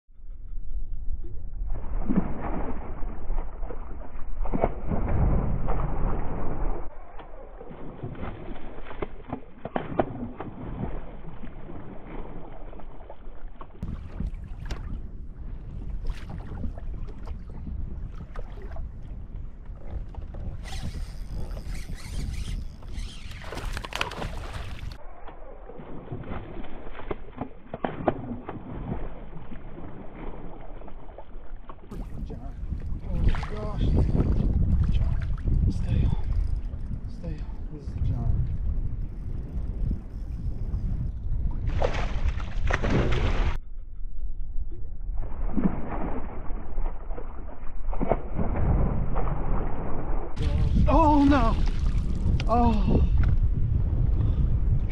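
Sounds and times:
wind rumble on microphone: 0.1s - 54.9s
water lapping around a kayak: 1.2s - 25.0s, 25.6s - 43.6s, 44.2s - 54.9s
fish thrashing and splashing: 21.9s - 25.0s
fish thrashing and splashing water: 23.1s - 25.0s, 41.6s - 43.6s.

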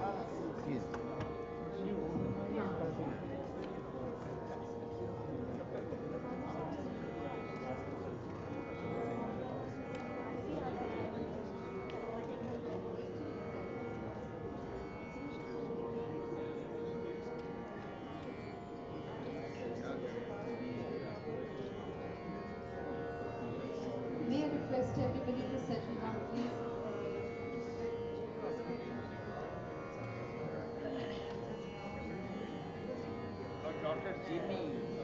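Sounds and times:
crowd chatter: 0.0s - 35.0s
tanpura drone: 0.0s - 35.0s.

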